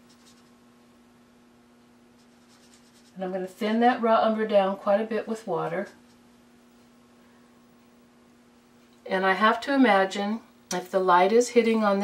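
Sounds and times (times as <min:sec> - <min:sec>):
brush scratching on palette: 0:00.0 - 0:00.6, 0:02.1 - 0:03.3.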